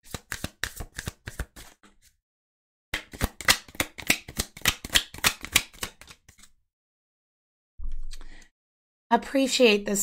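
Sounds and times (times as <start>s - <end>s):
cards being shuffled: 0.0s - 2.1s, 3.0s - 6.6s.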